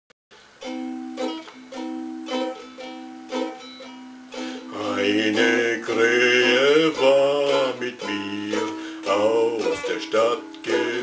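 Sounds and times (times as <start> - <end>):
ukulele strumming chords: 0.4 - 11.0.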